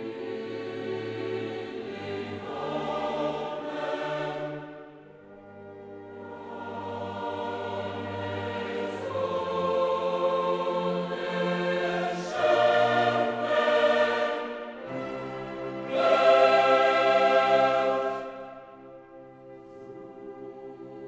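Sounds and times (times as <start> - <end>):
choir singing held chords: 0.0 - 21.0.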